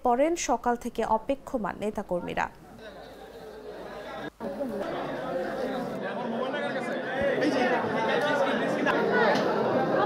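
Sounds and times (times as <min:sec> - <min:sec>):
crowd babble: 0:02.1 - 0:10.0.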